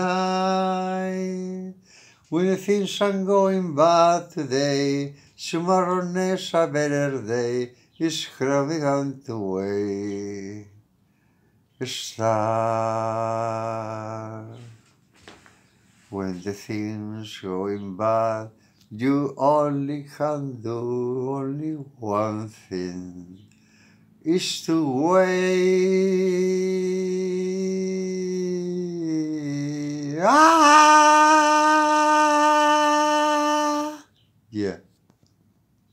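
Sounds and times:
man singing a long note: 0.0 - 1.7, 24.3 - 34.1
man singing a long low note: 0.0 - 10.8, 11.8 - 14.8, 16.1 - 23.4, 24.3 - 34.1.

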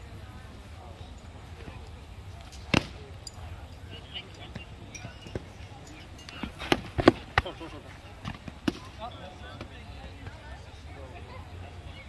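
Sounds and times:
faint chatter: 0.0 - 12.0.

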